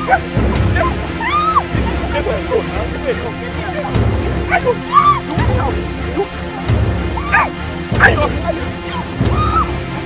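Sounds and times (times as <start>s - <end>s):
background music: 0.0s - 10.0s
women yelping cries: 0.0s - 10.0s.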